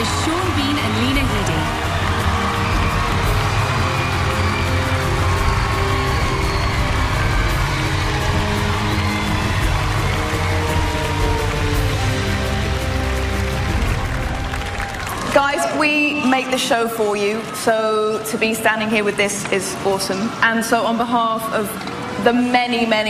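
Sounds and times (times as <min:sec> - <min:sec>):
loud music: 0:00.0 - 0:16.4
large crowd cheering: 0:00.0 - 0:18.2.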